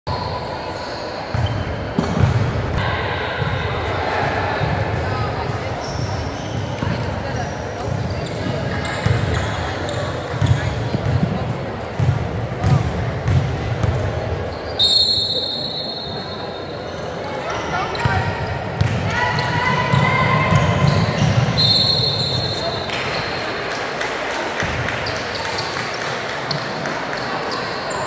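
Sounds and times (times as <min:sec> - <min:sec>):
people talking in background: 0:00.1 - 0:28.0.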